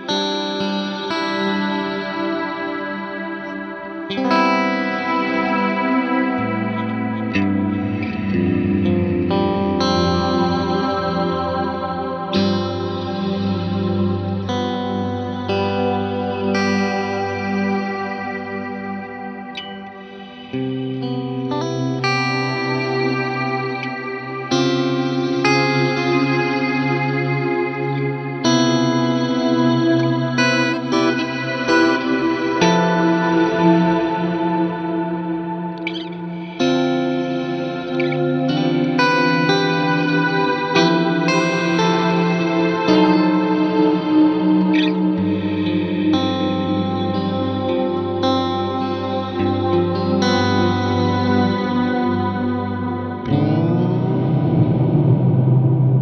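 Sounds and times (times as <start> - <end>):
electric guitar with long reverb: 0.0 - 56.0.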